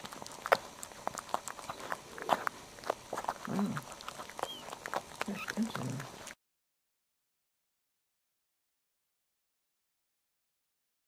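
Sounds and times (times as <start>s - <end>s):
puppies suckling: 0.0s - 6.4s
puppy grunts: 0.0s - 6.4s
puppy squeak: 4.4s - 5.6s.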